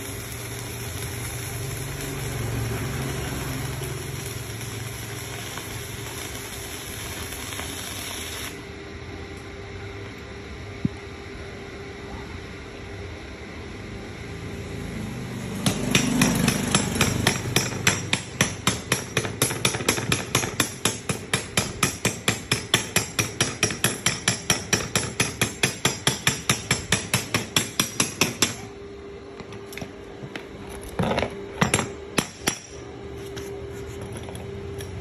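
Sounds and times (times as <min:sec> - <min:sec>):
welding arc crackling: 0:00.0 - 0:08.7, 0:15.3 - 0:28.6.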